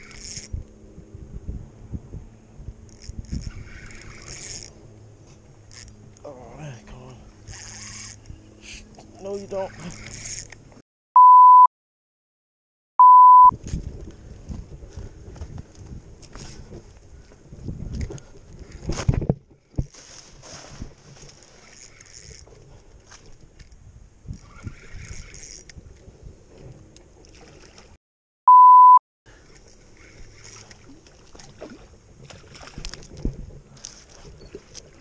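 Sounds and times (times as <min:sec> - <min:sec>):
censor bleep: 0:11.2 - 0:11.7, 0:13.0 - 0:13.5, 0:28.5 - 0:29.0
rustling and scraping on tree trunk: 0:18.0 - 0:23.6.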